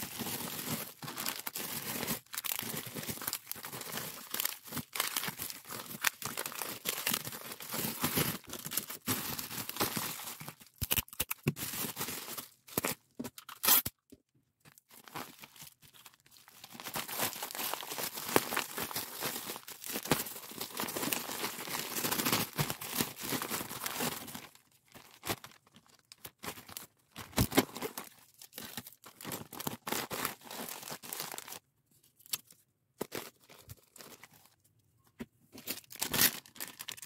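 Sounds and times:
bubble wrap crinkling: 0.0 - 14.0, 14.7 - 31.6, 35.6 - 37.0
tape torn from dispenser: 13.4 - 14.0.

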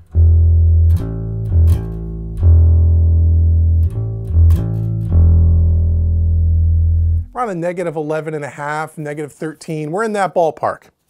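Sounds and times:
electric bass guitar notes: 0.0 - 8.4.

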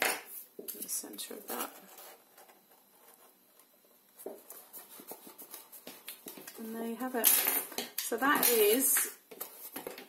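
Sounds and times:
paper taps and rustles: 4.2 - 6.6.

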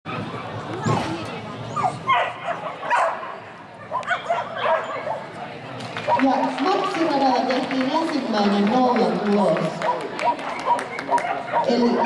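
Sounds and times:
dog barking and yipping: 1.8 - 3.3, 3.9 - 5.2.

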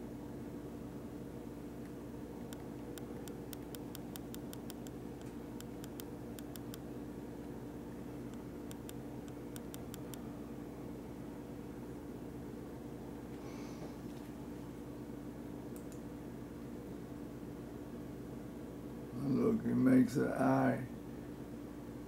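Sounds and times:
electrical hum with hiss: 0.0 - 22.0
quick light clicks: 2.5 - 6.8, 8.3 - 10.2.

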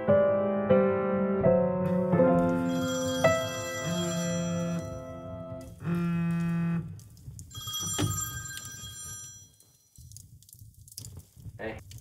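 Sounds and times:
piano notes: 0.0 - 6.9
mobile phone ringing: 2.7 - 5.4, 7.5 - 9.6.

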